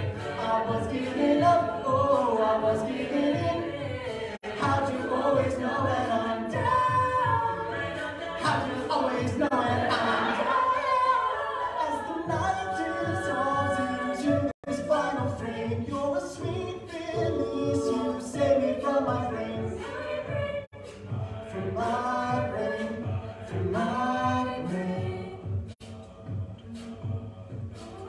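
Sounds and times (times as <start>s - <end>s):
a cappella group singing: 0.0s - 28.0s
vocal percussion beat: 0.0s - 28.0s.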